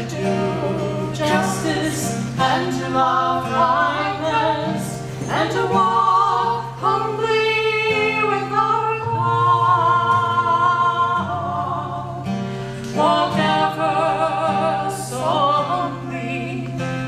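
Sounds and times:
strummed acoustic guitar: 0.0s - 17.0s
women singing together: 0.0s - 17.0s.

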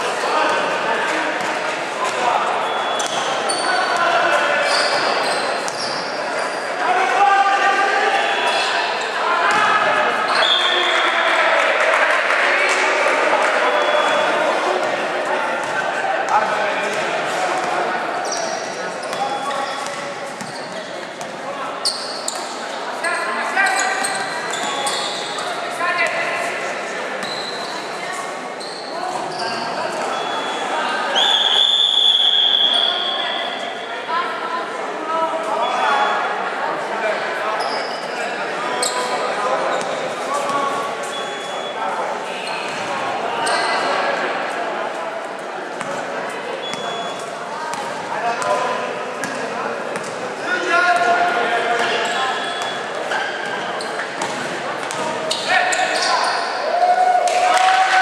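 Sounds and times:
sneakers squeaking on court: 1.4s - 4.0s, 4.7s - 6.7s, 17.6s - 26.2s, 27.2s - 27.9s, 28.6s - 30.6s, 42.4s - 43.9s, 46.6s - 48.6s, 49.2s - 50.2s, 51.8s - 56.5s
referee's whistle: 2.6s - 3.7s, 10.3s - 11.0s, 30.1s - 33.6s, 52.3s - 52.8s.

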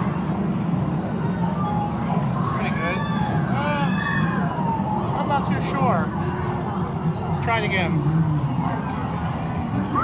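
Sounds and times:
low hum of machines and people: 0.0s - 10.0s.

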